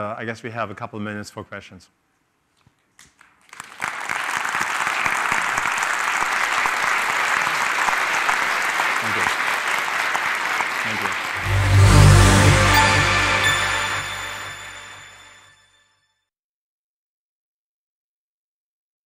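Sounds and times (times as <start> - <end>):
audience applauding: 3.4 - 15.2.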